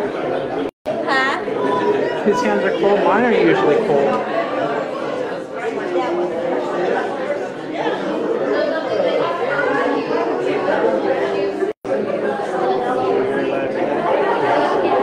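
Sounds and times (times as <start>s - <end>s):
babble of overlapping voices: 0.0s - 15.0s.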